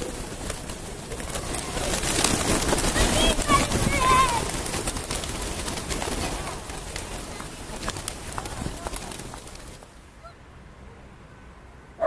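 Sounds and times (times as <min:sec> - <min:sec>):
pigeon wings flapping: 0:00.0 - 0:10.0
noisy hiss: 0:00.0 - 0:12.0.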